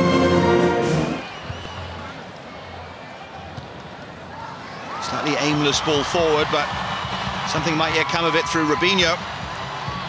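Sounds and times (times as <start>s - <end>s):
orchestral anthem brass and strings: 0.0s - 1.3s
low crowd noise: 0.3s - 10.0s.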